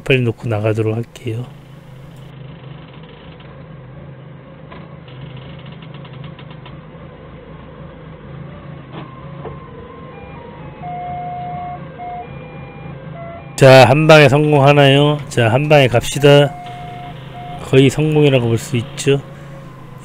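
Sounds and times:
forklift engine running: 0.6s - 20.0s
electronic tones at changing pitches: 10.1s - 20.0s.

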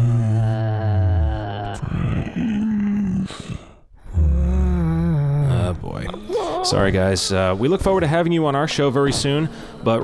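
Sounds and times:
deep groaning voice: 0.0s - 10.0s.

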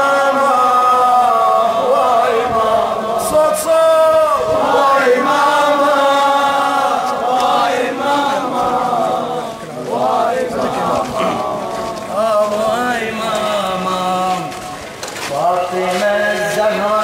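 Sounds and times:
man chanting a lament: 0.0s - 17.0s.

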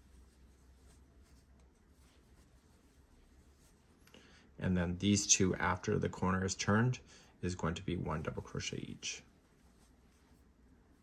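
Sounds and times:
yarn rustling on crochet hook: 0.0s - 4.1s, 7.4s - 11.0s
faint room hum: 0.0s - 11.0s.

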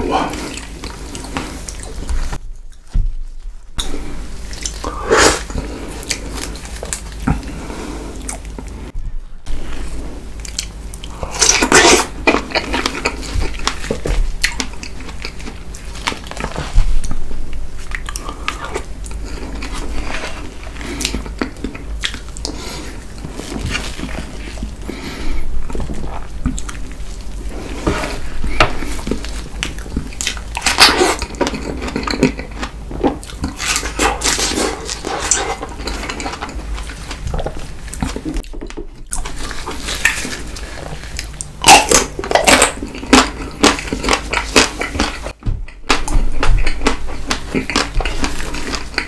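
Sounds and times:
close chewing with wet clicks: 35.8s - 49.0s.

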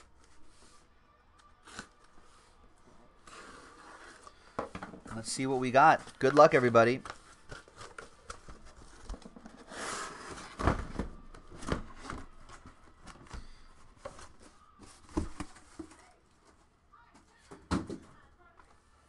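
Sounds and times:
cardboard rustling and scraping: 6.0s - 12.8s.

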